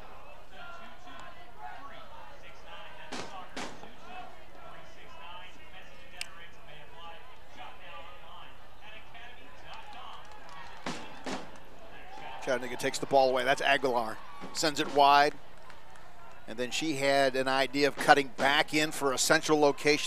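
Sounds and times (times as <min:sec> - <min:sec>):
murmur of crowd and voices: 0:00.0 - 0:20.0.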